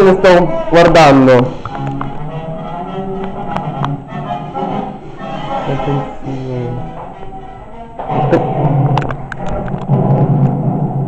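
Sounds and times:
film soundtrack music: 0:00.0 - 0:11.0.

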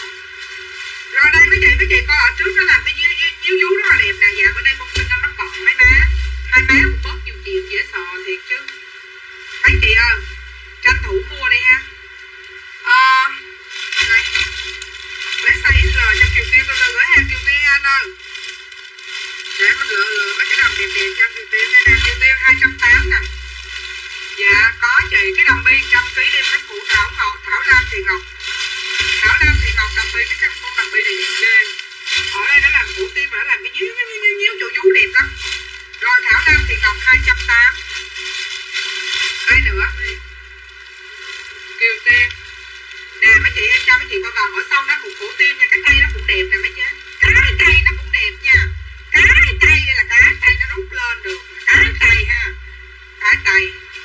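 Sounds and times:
music with low beat: 0:00.0 - 0:54.0
voices: 0:00.0 - 0:54.0.

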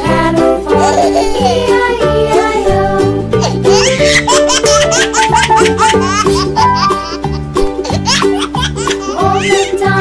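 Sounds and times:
upbeat children's music: 0:00.0 - 0:10.0
baby laughing: 0:00.7 - 0:10.0.

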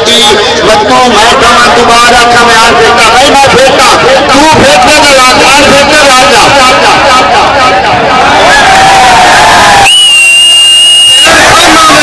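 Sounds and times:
crowd shouting: 0:03.2 - 0:12.0.

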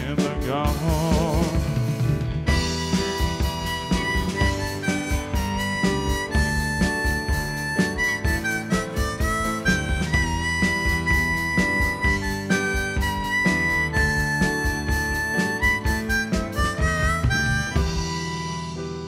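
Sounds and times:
country band playing: 0:00.0 - 0:19.0
harmonica solo: 0:00.7 - 0:19.0.

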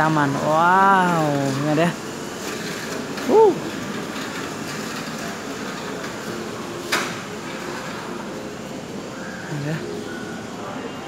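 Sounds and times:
shopping mall background noise: 0:00.0 - 0:11.0.

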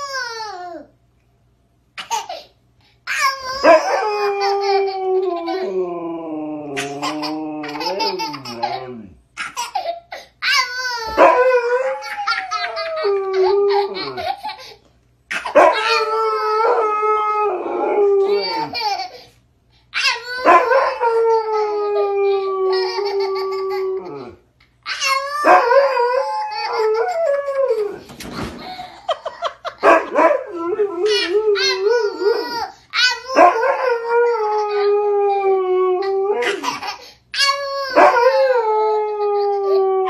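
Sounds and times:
toddler shrieking and laughing: 0:03.1 - 0:05.7, 0:06.8 - 0:11.2, 0:11.9 - 0:16.6, 0:18.3 - 0:19.3, 0:20.0 - 0:25.6, 0:31.0 - 0:33.4, 0:36.0 - 0:38.2
husky howling: 0:11.1 - 0:14.3, 0:37.9 - 0:40.0.

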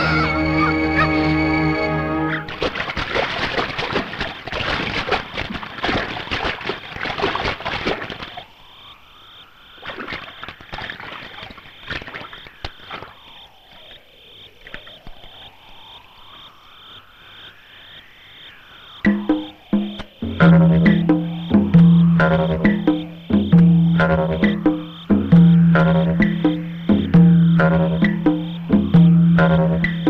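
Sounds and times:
music: 0:00.0 - 0:02.5, 0:19.1 - 0:30.0
frogs croaking: 0:02.3 - 0:30.0
insect chirping: 0:07.8 - 0:30.0.

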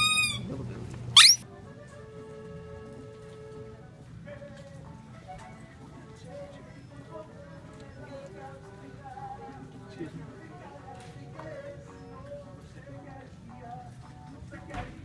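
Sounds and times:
rubber squeeze toy squeak: 0:00.0 - 0:00.5, 0:01.2 - 0:01.4
background music: 0:01.4 - 0:15.0.

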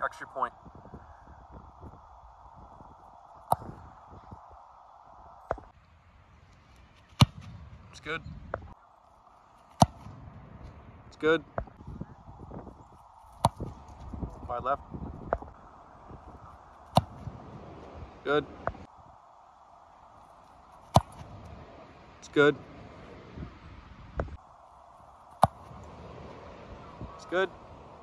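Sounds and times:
foot kicking football: 0:03.4 - 0:04.1, 0:05.4 - 0:05.8, 0:06.4 - 0:08.7, 0:09.6 - 0:10.8, 0:12.6 - 0:14.4, 0:16.5 - 0:18.0, 0:20.7 - 0:21.5, 0:25.3 - 0:26.4.

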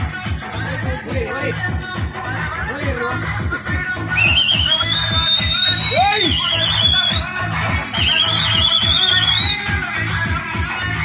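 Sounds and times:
loud dance music: 0:00.0 - 0:11.0
high wavering whistling tone: 0:04.2 - 0:07.3, 0:07.9 - 0:09.7.

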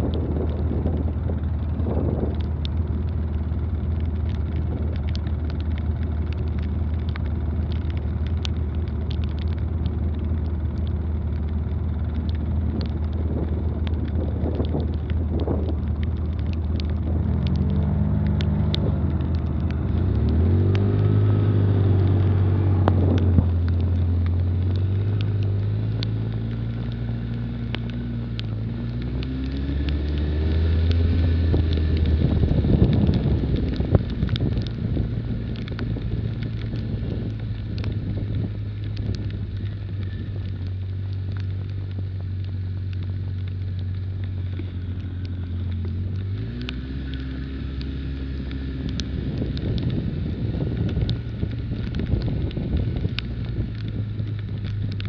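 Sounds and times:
atv engine idling and revving: 0:00.0 - 0:55.0
light ticks: 0:00.0 - 0:55.0.

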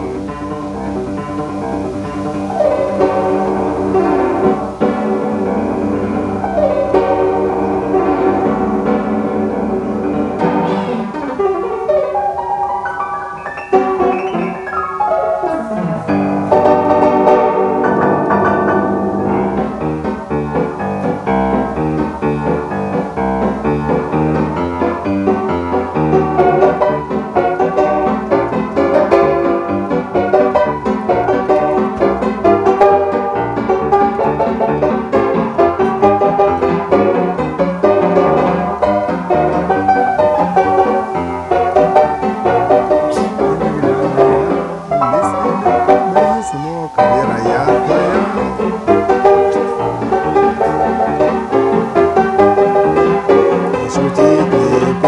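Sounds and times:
upright piano playing jazz: 0:00.0 - 0:55.0.

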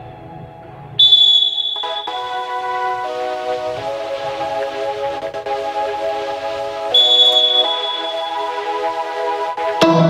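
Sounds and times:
background music: 0:00.0 - 0:10.0
referee's whistle blast: 0:01.0 - 0:03.0, 0:06.9 - 0:08.9.

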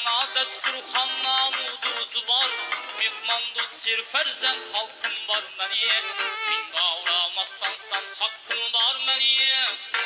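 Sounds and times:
man singing ornamented vocal line: 0:00.0 - 0:10.0.

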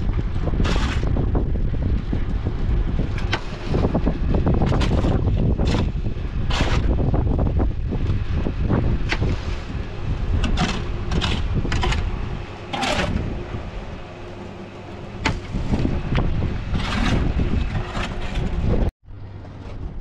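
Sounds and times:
sharp building work noises: 0:00.0 - 0:20.0
wind buffeting microphone: 0:00.0 - 0:20.0.

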